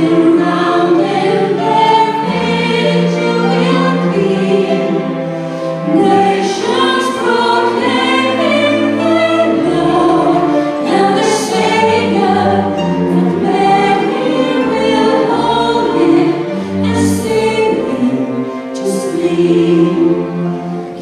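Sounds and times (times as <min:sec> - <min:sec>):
choir singing a carol: 0:00.0 - 0:21.0
piano: 0:00.0 - 0:21.0
string orchestra: 0:00.0 - 0:21.0.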